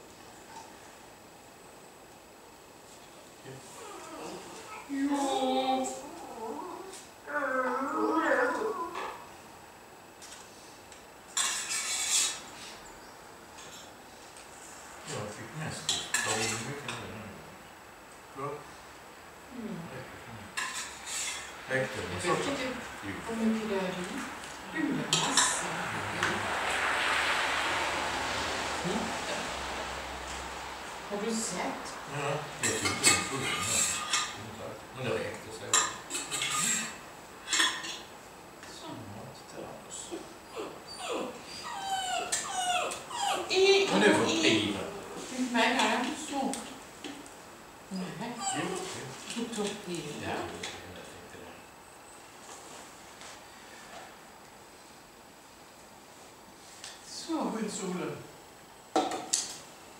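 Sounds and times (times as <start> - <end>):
small dog whimpering: 3.7 - 9.3, 40.1 - 45.0, 47.9 - 49.1.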